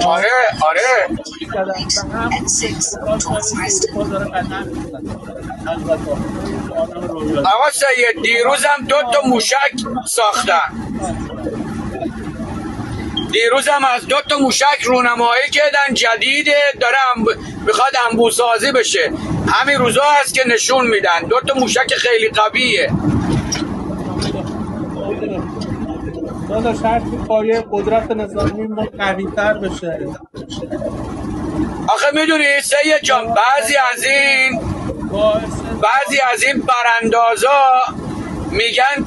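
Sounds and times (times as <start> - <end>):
muffled indistinct speech: 0.0 - 16.0, 18.9 - 39.0
steady low rumble: 0.0 - 39.0.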